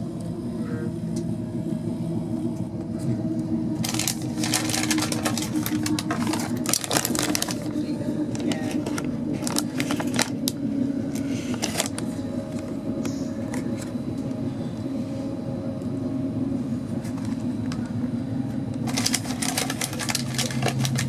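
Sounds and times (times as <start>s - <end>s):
train rumble from inside carriage: 0.0s - 21.0s
plastic wrapper crinkling: 3.8s - 7.7s, 8.3s - 10.6s, 11.2s - 12.1s, 18.9s - 21.0s.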